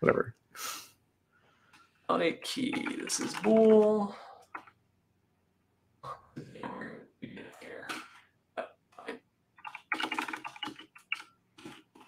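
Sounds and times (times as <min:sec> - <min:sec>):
fast keyboard typing: 0:02.5 - 0:04.7, 0:09.6 - 0:12.0.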